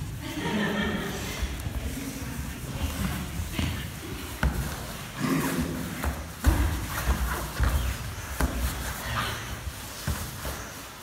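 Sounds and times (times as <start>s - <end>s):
bodies thudding on foam mats: 2.9s - 11.0s
grunts and heavy breathing: 5.0s - 6.2s.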